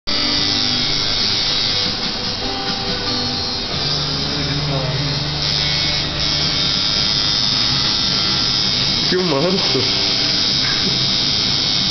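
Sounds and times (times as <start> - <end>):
tattoo machine buzzing: 0.1 - 11.9.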